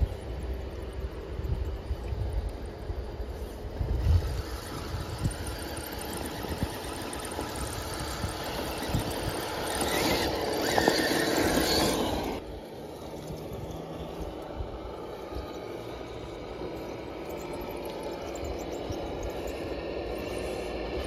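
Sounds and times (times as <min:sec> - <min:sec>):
wheels over dry leaves: 0:00.0 - 0:21.0
toy car electric motor whining: 0:01.2 - 0:21.0.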